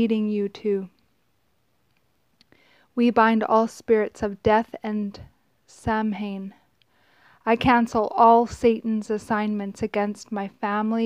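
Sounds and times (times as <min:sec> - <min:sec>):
woman speaking: 0:00.0 - 0:01.0, 0:03.0 - 0:06.6, 0:07.4 - 0:11.0
soft breath in: 0:02.5 - 0:03.0, 0:06.8 - 0:07.5.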